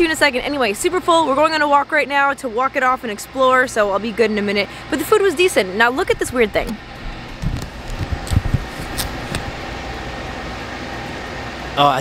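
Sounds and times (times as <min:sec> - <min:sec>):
camera handling thumps: 0:06.1 - 0:09.6.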